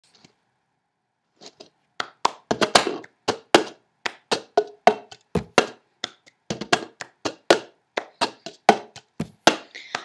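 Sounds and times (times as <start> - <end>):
hand claps: 2.0 - 10.0.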